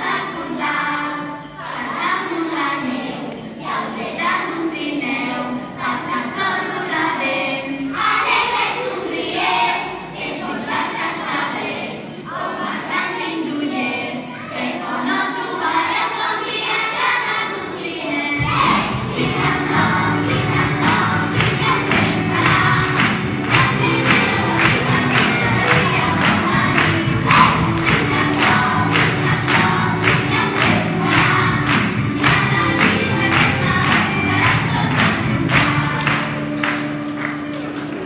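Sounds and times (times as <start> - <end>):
children's choir singing: 0.0 - 38.0
instrumental accompaniment with beat: 18.4 - 38.0.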